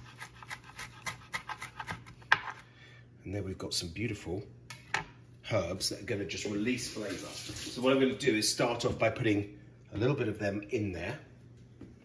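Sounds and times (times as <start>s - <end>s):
knife chopping on cutting board: 0.0s - 2.6s.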